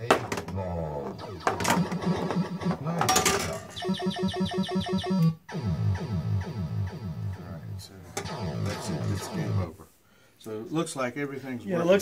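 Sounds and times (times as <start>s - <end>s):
rapid electronic beeps: 1.1s - 2.9s, 3.7s - 9.7s.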